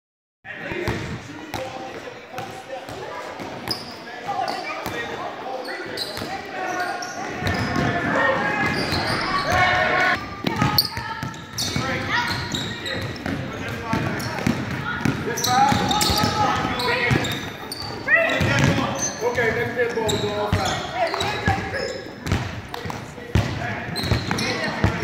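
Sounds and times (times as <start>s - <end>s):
basketball bouncing on wooden floor: 18.4s - 18.8s, 20.5s - 25.0s.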